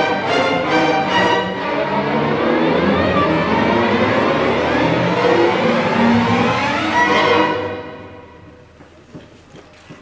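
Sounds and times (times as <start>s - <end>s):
string orchestra playing: 0.0s - 8.7s.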